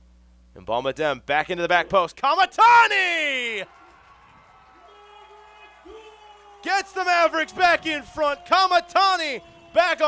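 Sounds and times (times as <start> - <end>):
man commentating sports: 0.6 - 3.9, 4.8 - 10.0.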